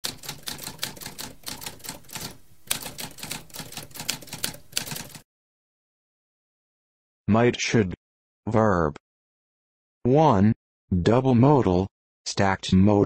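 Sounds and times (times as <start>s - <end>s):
typewriter keystrokes: 0.0s - 5.2s.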